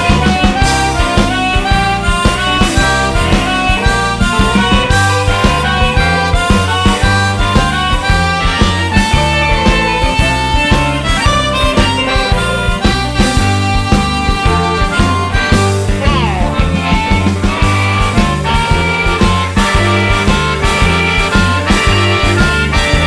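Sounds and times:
bass: 0.0 - 23.0
drums keeping a steady beat: 0.0 - 23.0
guitar: 0.0 - 23.0
harmonica bending notes: 0.0 - 23.0.

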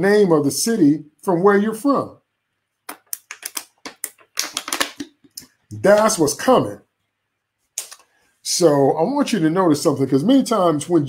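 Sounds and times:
plastic bottle crackling: 2.9 - 5.4.

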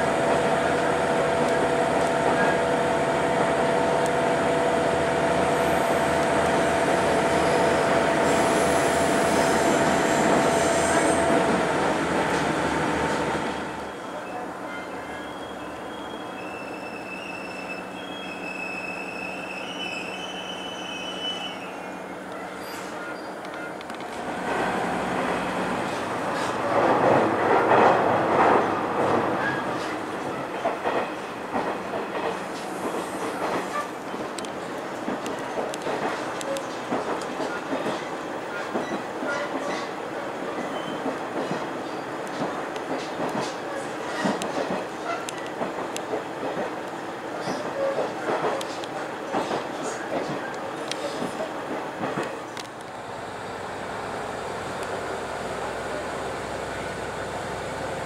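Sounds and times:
train hum: 0.0 - 58.0
train wheels squealing on rails: 5.4 - 11.6, 13.1 - 23.9, 29.3 - 34.4, 37.4 - 42.2, 43.0 - 45.7, 47.3 - 48.8.

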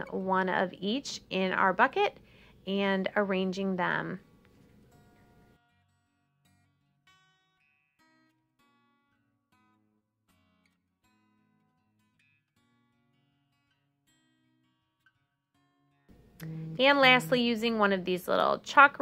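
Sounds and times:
plucked acoustic guitar: 16.1 - 18.5.

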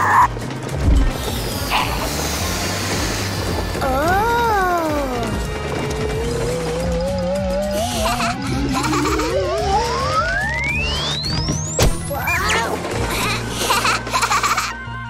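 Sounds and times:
cartoon background music: 0.0 - 15.0.

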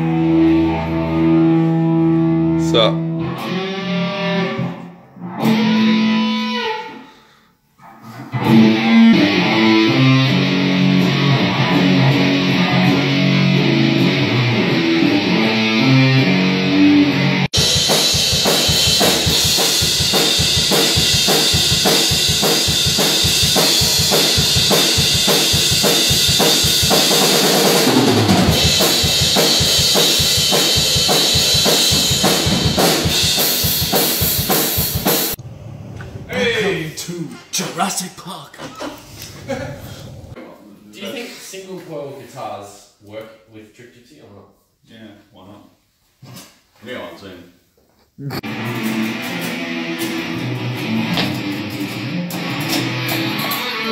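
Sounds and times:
electric guitar riff: 0.0 - 7.2, 8.3 - 36.8, 48.3 - 53.9
drum kit fast beat with cymbals: 17.6 - 35.4.

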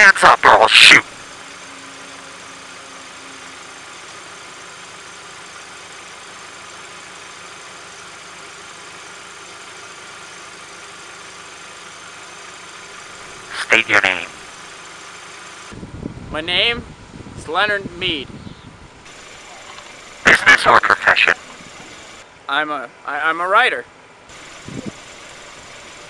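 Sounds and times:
car engine idling: 0.0 - 16.3, 18.7 - 23.2, 23.9 - 26.0.

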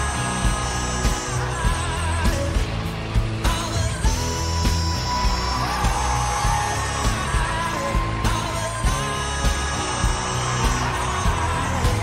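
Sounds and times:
pop-rock backing track: 0.0 - 12.0
steady drum beat: 0.0 - 12.0.

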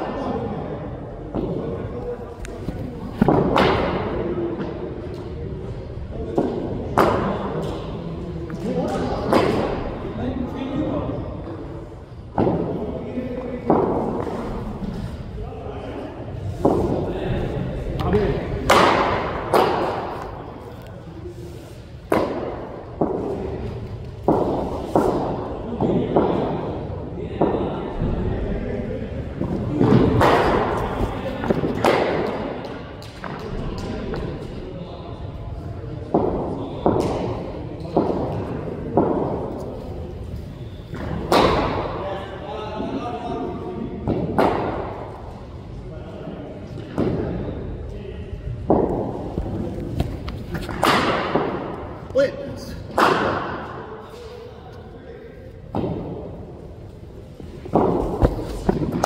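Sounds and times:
balls thudding into nets: 57.4 - 59.0.

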